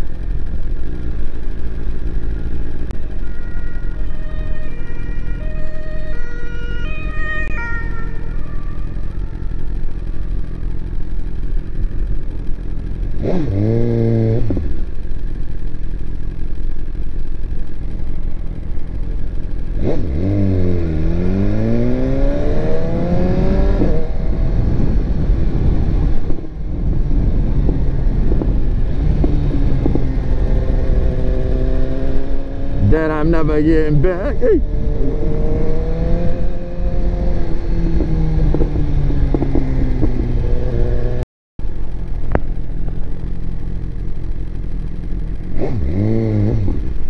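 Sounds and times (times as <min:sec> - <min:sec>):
motorcycle engine idling and revving: 0:00.0 - 0:47.0.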